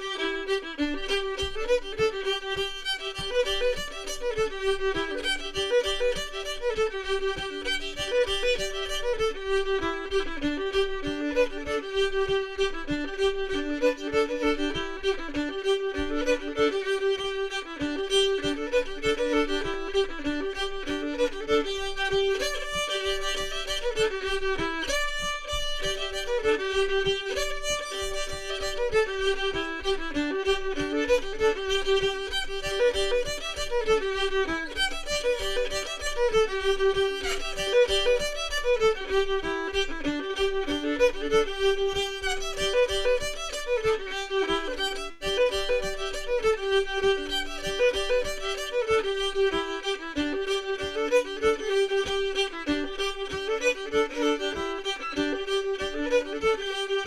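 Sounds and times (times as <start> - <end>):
fiddle playing fast tune: 0.0 - 57.0.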